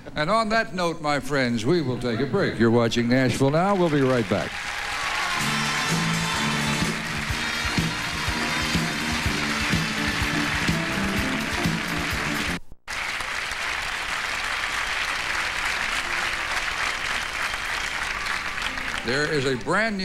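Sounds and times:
audience applauding: 0:03.4 - 0:20.0
band music with steady beat: 0:05.4 - 0:12.6.

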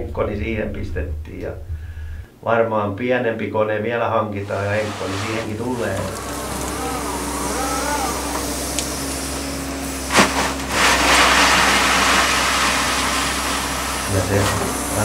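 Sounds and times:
excavator engine humming: 0:04.4 - 0:15.0
hydraulic whine: 0:04.4 - 0:15.0.

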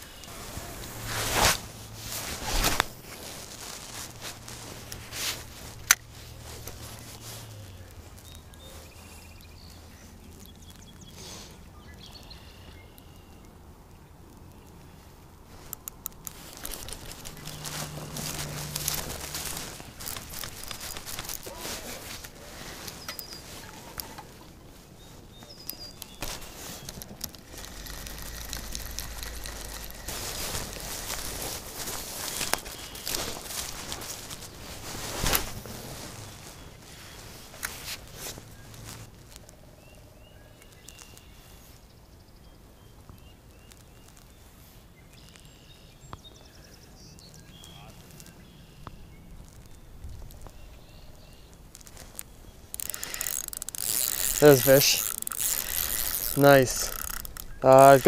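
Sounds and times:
footsteps through dry grass: 0:00.0 - 0:10.6, 0:15.5 - 0:41.8, 0:47.4 - 0:58.0
clothing rubbing: 0:00.2 - 0:07.6, 0:16.3 - 0:25.2, 0:26.1 - 0:39.1, 0:52.0 - 0:58.0.

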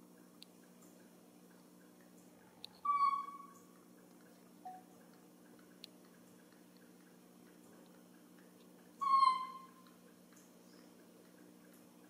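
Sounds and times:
baby monkey whistle-like cry: 0:02.8 - 0:03.6, 0:09.0 - 0:09.8.

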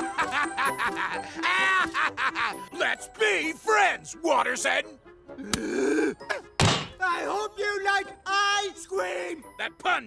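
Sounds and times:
heavy thud: 0:06.6 - 0:07.0
sharp thunk: 0:06.6 - 0:07.0.

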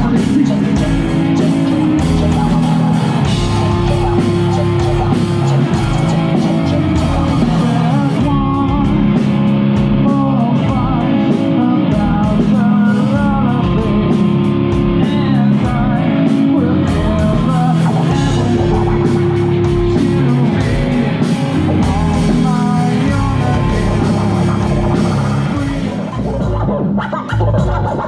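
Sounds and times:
live metal band playing loud: 0:00.0 - 0:28.0.

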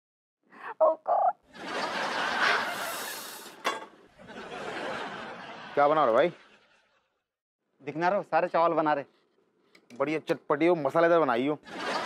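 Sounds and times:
warbling vocal sound: 0:00.6 - 0:01.4.

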